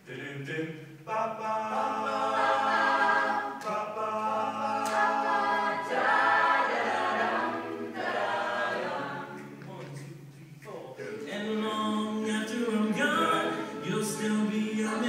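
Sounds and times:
a cappella chorus singing: 0:00.0 - 0:15.0.

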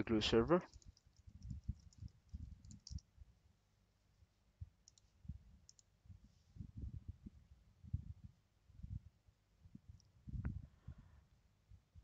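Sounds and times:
computer mouse clicks: 0:00.7 - 0:03.1, 0:04.8 - 0:05.9.

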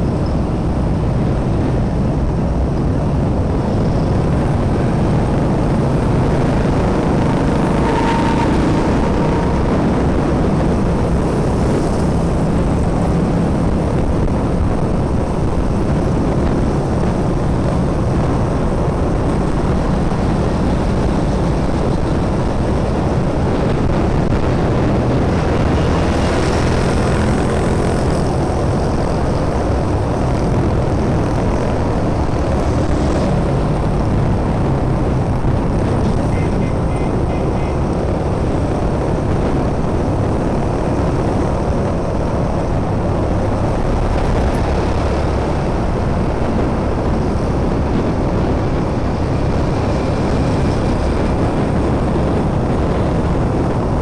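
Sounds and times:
motorbike engine drone: 0:00.0 - 0:54.0
wind rush: 0:00.0 - 0:54.0.

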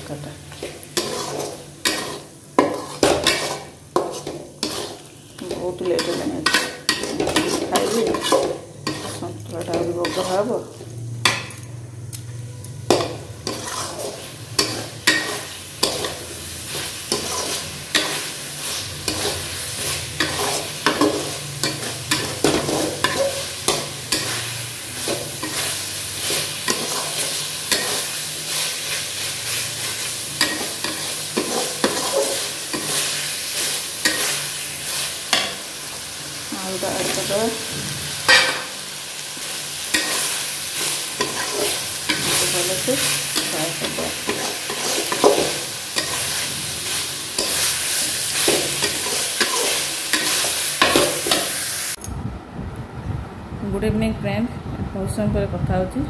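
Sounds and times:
food sizzling: 0:00.0 - 0:52.0
spatula scraping pan: 0:00.5 - 0:11.4, 0:12.9 - 0:35.7, 0:39.8 - 0:51.6.

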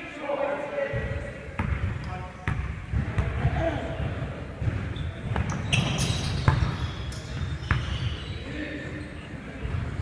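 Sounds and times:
players' voices: 0:00.0 - 0:10.0
basketball bouncing on wooden floor: 0:00.9 - 0:08.1.

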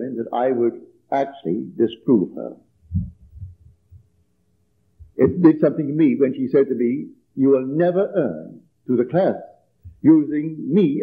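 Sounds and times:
faint recording hum: 0:00.0 - 0:11.0
soft low thumps: 0:02.7 - 0:04.3, 0:04.9 - 0:05.5, 0:09.8 - 0:10.1.

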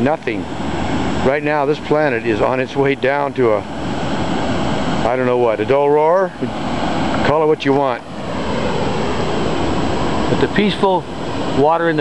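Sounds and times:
water rushing over weir: 0:00.0 - 0:12.0.

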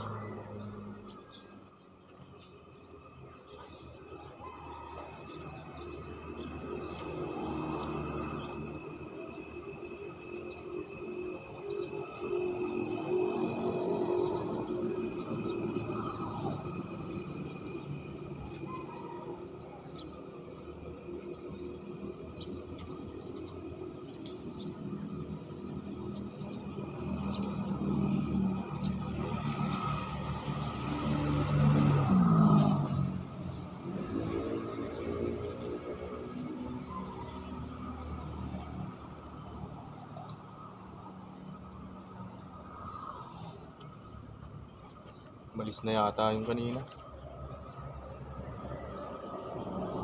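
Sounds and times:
vehicle passing overhead: 0:24.7 - 0:50.0.

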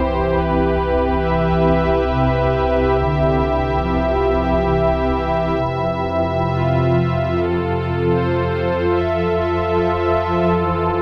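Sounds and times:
steady low synth drone: 0:00.0 - 0:11.0.

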